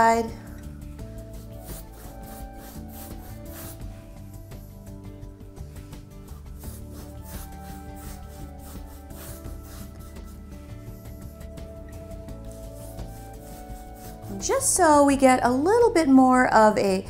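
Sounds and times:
background music with held notes: 0.0 - 17.0
paintbrush rubbing on canvas: 1.0 - 14.8.

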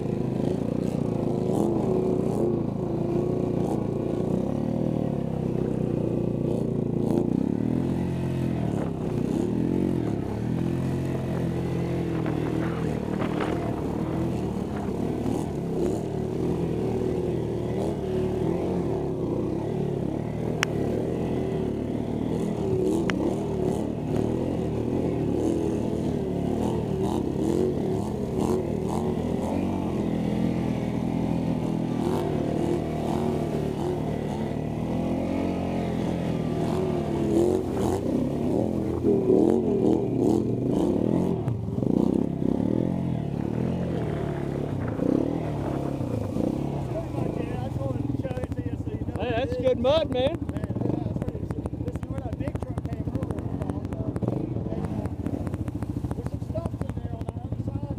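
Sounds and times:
atv engine revving: 0.0 - 57.9.

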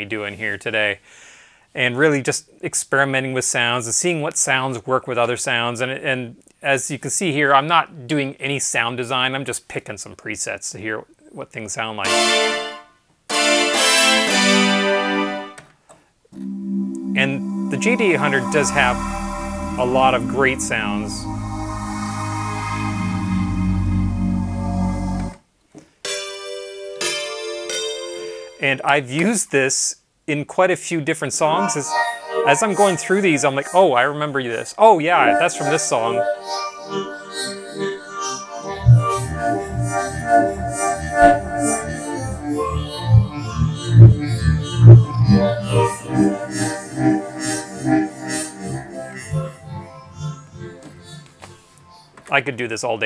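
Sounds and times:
synthesizer chord with deep bass: 16.4 - 25.4, 38.6 - 51.8.

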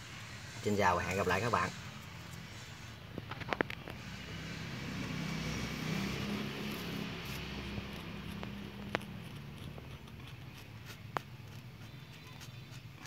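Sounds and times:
passing vehicle engine hum: 1.4 - 13.0.

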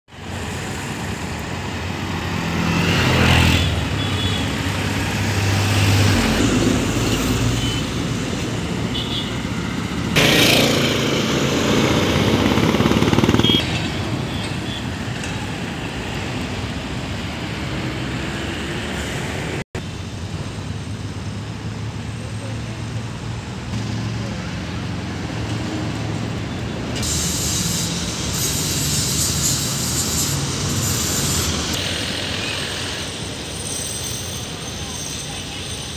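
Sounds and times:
roadway hum: 0.1 - 35.9
vehicles passing: 0.1 - 35.9.

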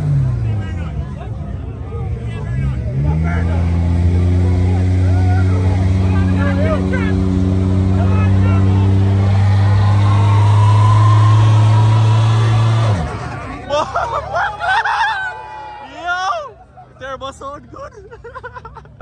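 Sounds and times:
faint crowd voices: 0.0 - 18.1
car engine at high revs: 2.0 - 14.5.

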